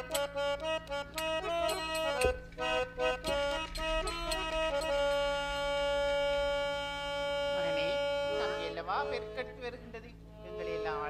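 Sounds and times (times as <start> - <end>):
harmonium holding a note: 0.0 - 11.0.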